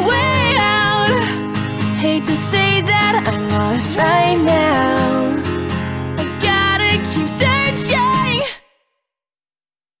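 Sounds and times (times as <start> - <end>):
acoustic guitar: 0.0 - 8.6
breathy sung vocal note: 4.0 - 5.7.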